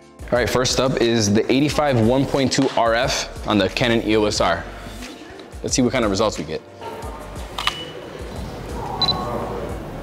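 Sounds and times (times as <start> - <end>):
camera shutter clicking: 7.6 - 7.9.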